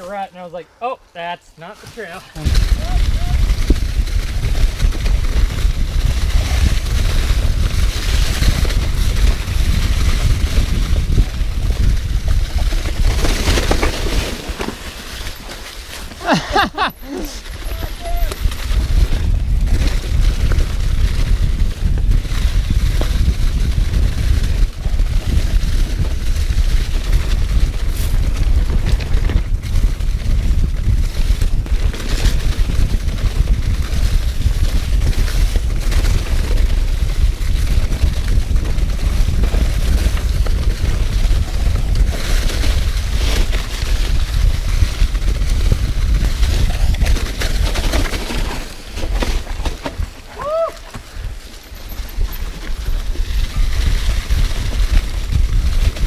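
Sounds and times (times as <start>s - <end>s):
tyres rolling through dirt: 1.7s - 56.0s
bike knocks and rattles: 2.4s - 17.7s, 18.4s - 56.0s
wind rumble on microphone: 2.4s - 56.0s.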